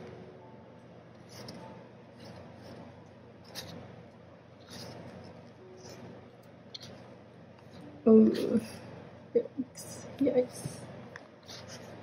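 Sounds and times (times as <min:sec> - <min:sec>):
electric fan humming: 0:00.0 - 0:12.0
photobook pages flipping: 0:01.2 - 0:03.9, 0:04.6 - 0:08.6, 0:11.4 - 0:12.0.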